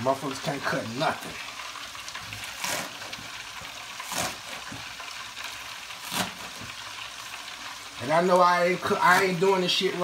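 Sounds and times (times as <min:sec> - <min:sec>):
frying sizzle: 0:00.0 - 0:10.0
knife cutting onions on board: 0:02.3 - 0:05.0, 0:06.0 - 0:06.8.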